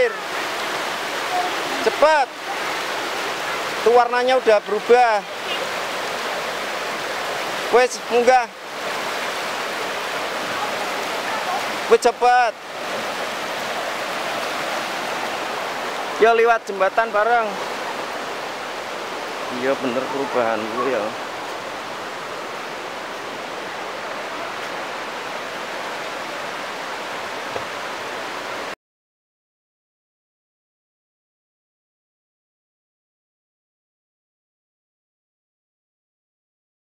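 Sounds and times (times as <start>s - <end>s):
river rushing over rocks: 0.0s - 28.8s.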